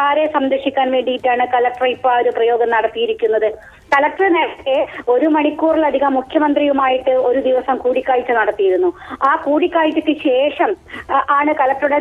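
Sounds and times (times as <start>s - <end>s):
woman speaking over telephone: 0.0s - 12.0s.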